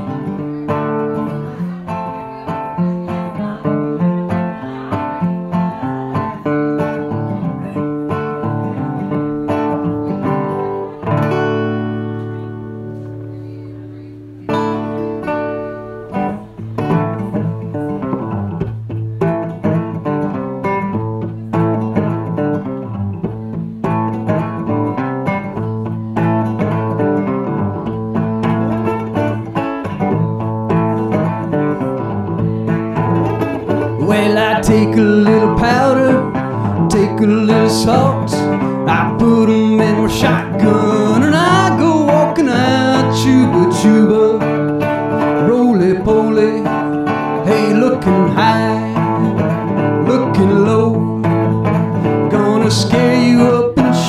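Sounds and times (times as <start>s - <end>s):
resonator guitar picking: 0.0s - 54.0s.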